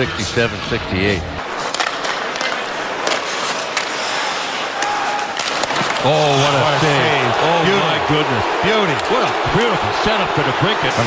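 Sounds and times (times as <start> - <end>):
crowd noise: 0.0 - 11.0
skates scraping ice: 1.4 - 7.3
stick clacking puck: 1.6 - 4.0, 5.3 - 6.5.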